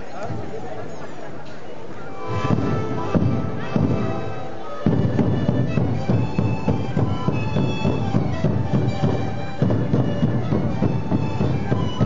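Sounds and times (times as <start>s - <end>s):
panpipes playing a melody: 2.1s - 12.0s.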